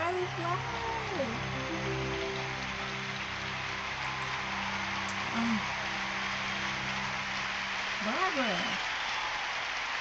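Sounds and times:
audience applause: 0.0s - 10.0s.

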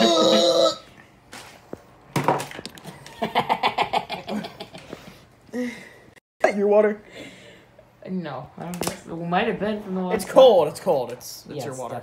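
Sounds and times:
young man laughing: 2.9s - 4.9s.

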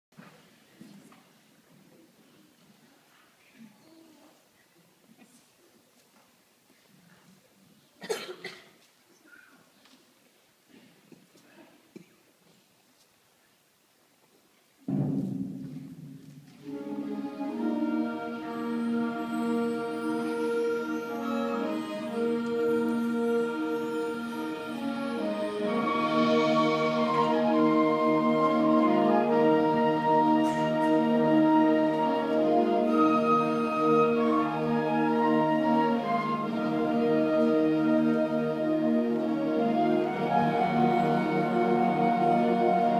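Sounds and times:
sustained wind chords: 16.6s - 42.9s.

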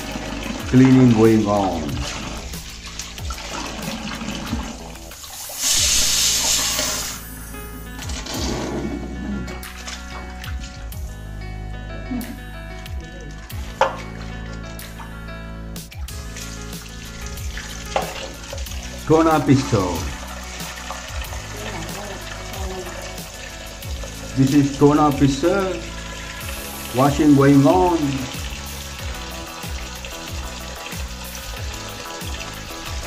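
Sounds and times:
tap water running into steel vessel: 0.0s - 7.2s, 13.2s - 15.2s, 16.0s - 33.0s
background music: 0.0s - 33.0s.

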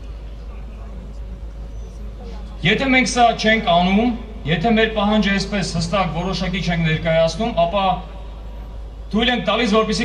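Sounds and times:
faint distant voices: 0.0s - 5.6s
steady low rumble: 0.0s - 10.0s.

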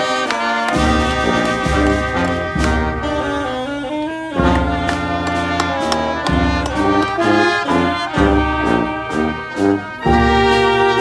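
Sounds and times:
brass band with saxophone: 0.0s - 11.0s.

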